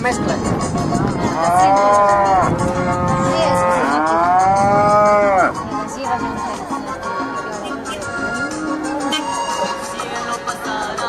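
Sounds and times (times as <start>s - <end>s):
cow mooing: 1.3s - 5.6s.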